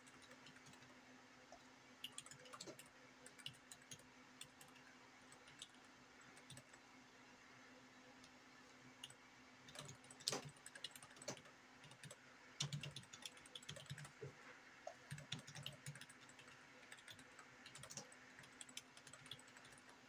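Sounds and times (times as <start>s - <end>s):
typing on computer keyboard: 0.0s - 0.9s, 2.0s - 6.8s, 9.0s - 14.3s, 14.9s - 20.0s.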